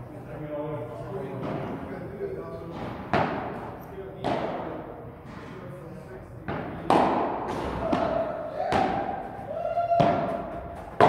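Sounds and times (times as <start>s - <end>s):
padel ball struck by rackets: 10.0s - 11.0s.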